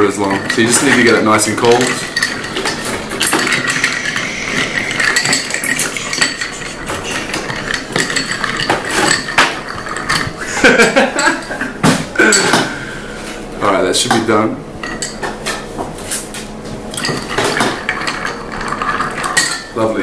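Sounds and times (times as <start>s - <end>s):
ice cubes clinking in glass: 0.0s - 11.0s.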